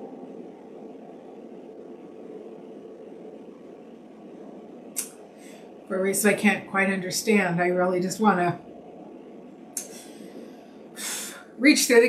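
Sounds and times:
background hiss: 0.0 - 12.0
room noise: 0.0 - 12.0.

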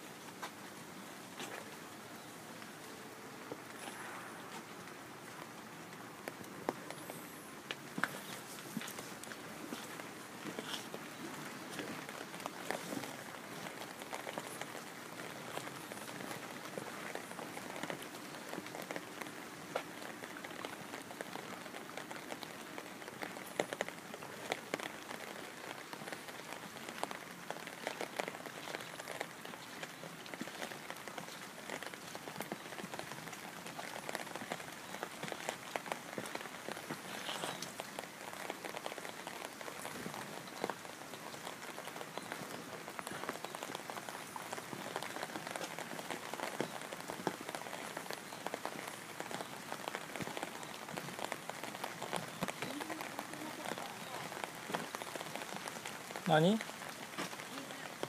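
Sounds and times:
steady rain falling: 0.0 - 58.0.

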